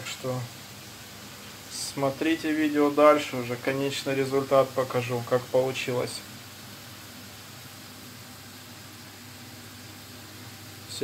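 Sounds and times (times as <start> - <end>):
potatoes sizzling in oil: 0.0 - 11.0.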